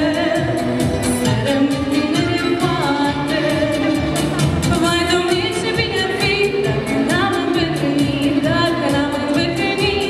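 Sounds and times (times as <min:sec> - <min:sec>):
backing music with steady beat: 0:00.0 - 0:10.0
woman singing with vibrato: 0:00.0 - 0:10.0.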